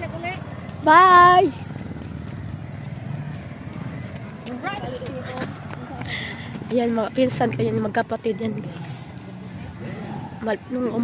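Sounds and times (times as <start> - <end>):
road noise: 0.0 - 11.0
vehicle engine rumble: 0.0 - 11.0.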